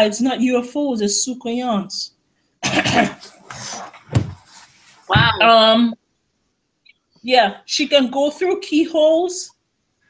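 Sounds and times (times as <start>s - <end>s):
person coughing: 2.6s - 3.3s.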